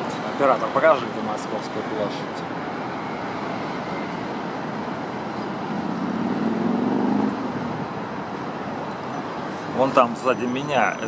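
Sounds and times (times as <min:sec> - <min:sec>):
city road traffic: 0:00.0 - 0:11.0
vehicle engine passing: 0:05.5 - 0:08.1.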